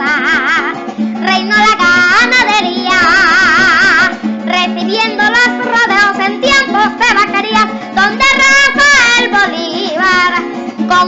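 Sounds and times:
boy singing folk song: 0.0s - 11.0s
instrumental backing: 0.0s - 11.0s.

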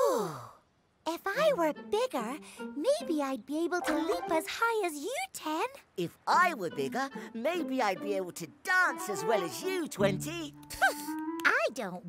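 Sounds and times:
cartoon voice sighing: 0.0s - 0.6s
cartoon character speaking: 1.1s - 12.0s.

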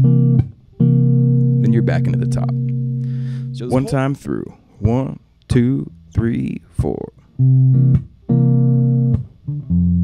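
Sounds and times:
electric guitar jazz-blues chords: 0.0s - 4.2s, 7.2s - 10.0s.

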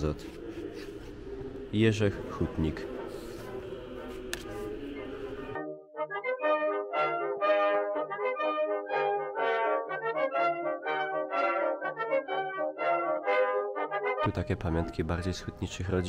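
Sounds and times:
brass chords: 2.1s - 14.6s.

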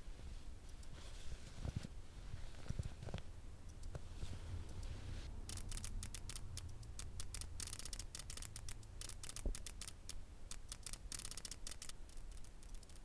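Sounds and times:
split-flap cards clicking: 5.5s - 13.0s.

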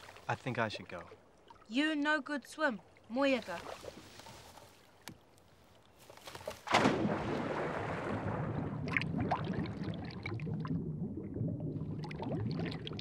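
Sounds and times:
splash of person diving: 6.5s - 10.4s
underwater rumble with bubbling: 7.0s - 13.0s.

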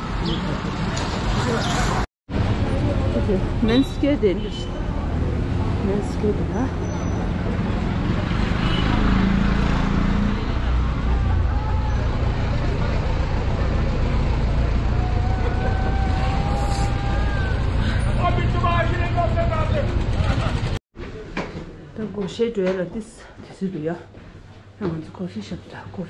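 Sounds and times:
traffic rumble: 0.0s - 26.0s
people's voices: 10.3s - 23.9s.

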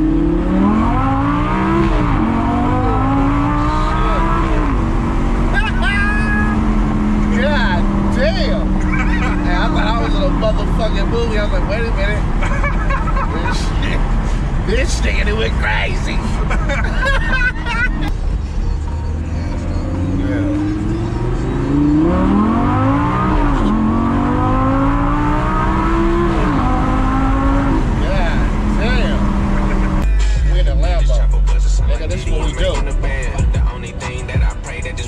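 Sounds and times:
sports car engine accelerating: 0.0s - 35.0s
person laughing: 8.7s - 10.0s, 12.3s - 14.0s, 16.2s - 18.1s, 29.4s - 30.0s.

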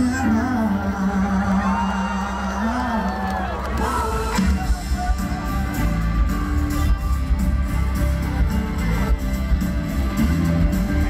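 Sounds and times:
crowd singing along: 0.0s - 11.0s
live pop song through sound system: 0.0s - 11.0s
crowd whooping: 0.4s - 7.8s.

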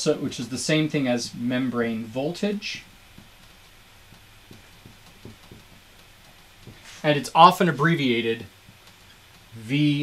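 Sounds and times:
low room hum: 0.0s - 10.0s
marker scratching on whiteboard: 2.6s - 9.6s.

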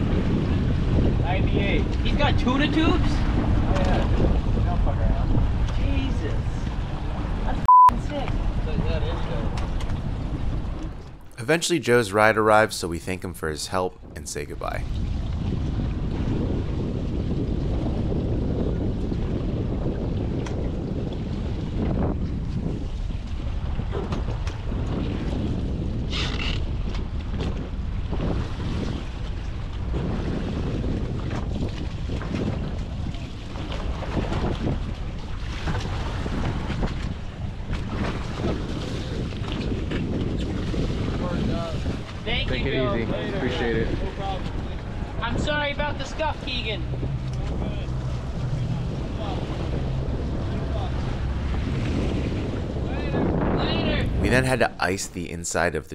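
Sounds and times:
wind buffeting microphone: 0.0s - 11.4s, 13.9s - 54.9s
boat engines running: 0.0s - 12.7s, 29.1s - 55.0s
water around boat hulls: 0.0s - 55.3s.

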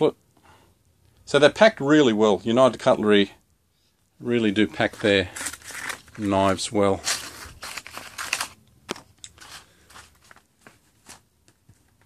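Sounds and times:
cardboard and paper crinkling: 4.7s - 12.0s.

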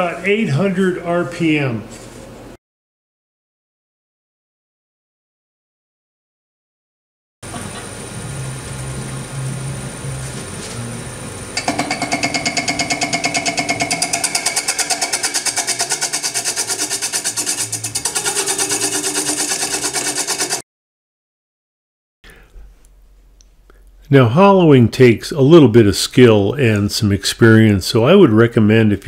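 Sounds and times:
wood lathe spinning: 11.5s - 20.6s
cutter chattering with ringing whine: 11.6s - 20.6s.

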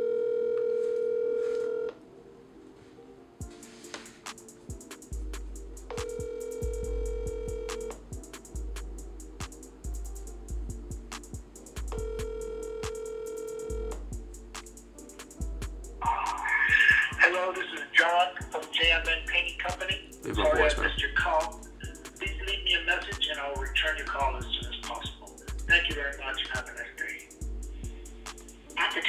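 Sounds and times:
telephone ringback tone: 0.0s - 1.9s, 6.0s - 7.9s, 12.0s - 13.9s
hip-hop music with beat: 3.4s - 29.0s.

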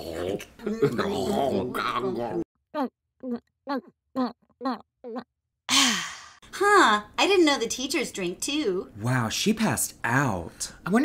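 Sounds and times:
person laughing: 0.6s - 1.8s
person sighing loudly: 5.7s - 6.4s.

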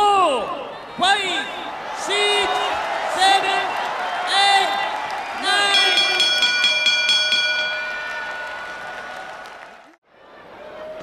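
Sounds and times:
boxing ring bell rung rapidly: 5.6s - 8.9s.

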